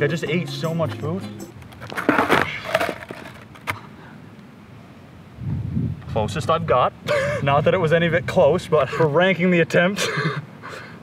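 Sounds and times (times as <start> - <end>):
skateboard wheels rolling on asphalt: 1.5 - 3.8
sharp skateboard clack: 1.6 - 3.8
skateboard clattering on asphalt: 1.6 - 3.8.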